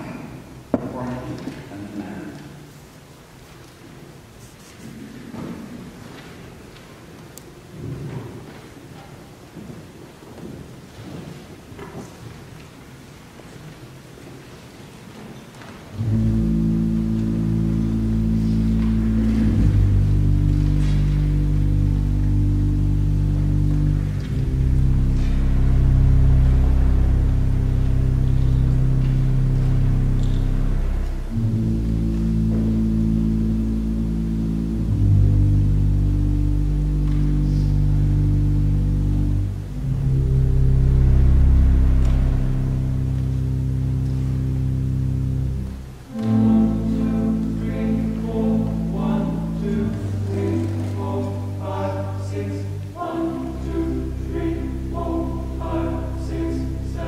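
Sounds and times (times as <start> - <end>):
pipe organ playing low chords: 15.6 - 57.0.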